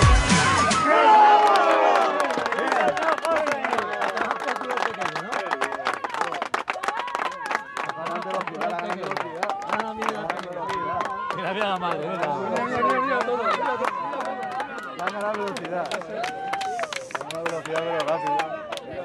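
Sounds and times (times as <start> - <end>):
spectators shouting: 0.0 - 4.3
spectators clapping: 1.1 - 19.0.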